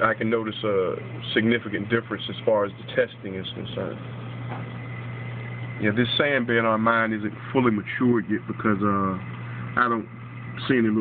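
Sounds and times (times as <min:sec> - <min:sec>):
pump hum with high whine: 0:00.0 - 0:11.0.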